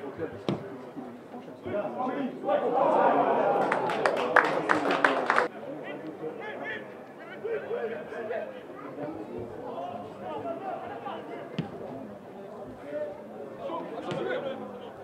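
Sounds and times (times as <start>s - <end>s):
players calling and chatting: 0.0s - 15.0s.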